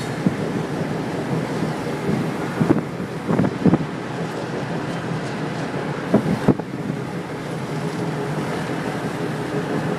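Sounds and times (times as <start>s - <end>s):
freight train rolling: 0.0s - 9.9s
road noise: 0.0s - 9.9s
wind at open car window: 0.0s - 9.9s.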